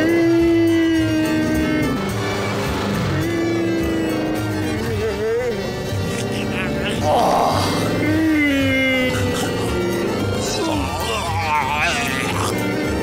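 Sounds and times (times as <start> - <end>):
background music: 0.0 - 13.0
voice holding long notes: 0.0 - 13.0.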